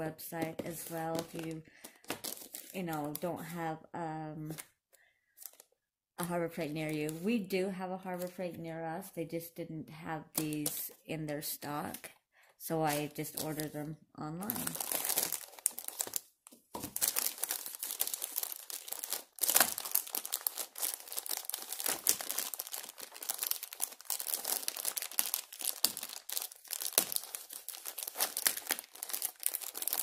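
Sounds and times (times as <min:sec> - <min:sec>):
plastic film crinkling: 0:00.2 - 0:03.3, 0:05.4 - 0:05.7, 0:12.8 - 0:30.0.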